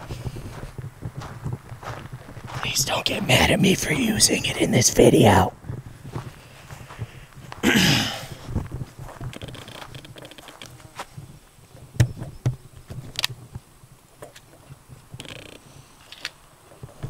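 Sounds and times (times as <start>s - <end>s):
insect buzz: 9.2s - 11.3s.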